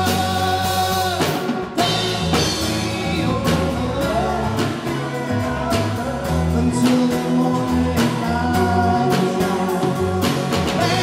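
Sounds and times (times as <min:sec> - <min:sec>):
acoustic guitar: 0:00.0 - 0:11.0
drum kit: 0:00.0 - 0:11.0
electric bass: 0:00.0 - 0:11.0
keyboard: 0:00.0 - 0:11.0.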